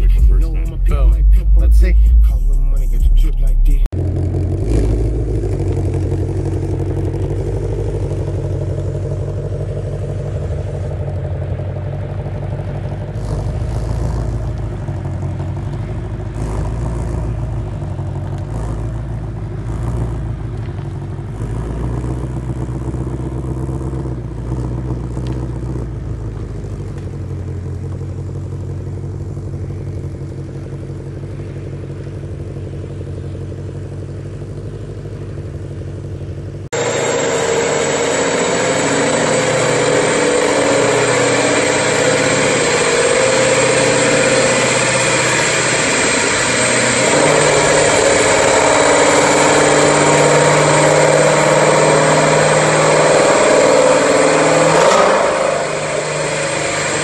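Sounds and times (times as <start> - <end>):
car engine at low revs: 0.0 - 57.0.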